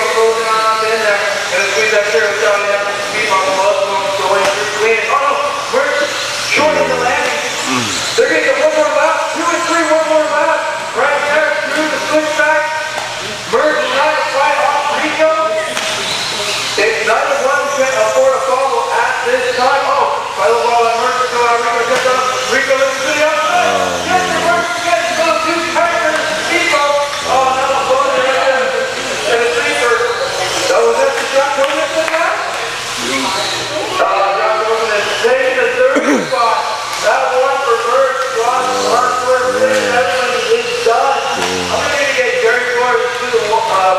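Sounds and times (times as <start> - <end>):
indistinct talk: 0.1 - 43.9.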